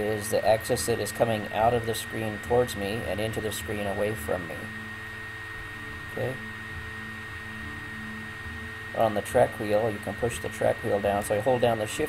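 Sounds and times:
electrical hum: 0:00.0 - 0:12.0
faint high-pitched whine: 0:00.0 - 0:12.0.

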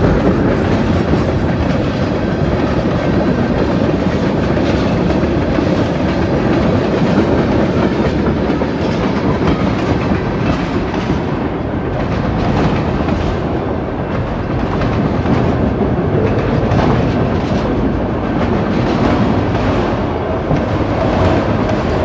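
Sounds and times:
freight train rolling past: 0:00.0 - 0:22.0.

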